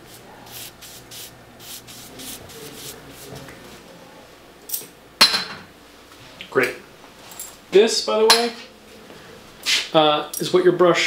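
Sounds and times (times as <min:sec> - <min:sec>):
brush strokes hissing on paper: 0:00.0 - 0:03.8.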